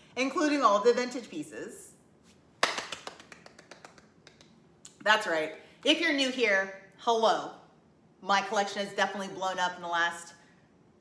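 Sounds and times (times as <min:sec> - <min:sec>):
hands clapping: 0:02.6 - 0:04.6.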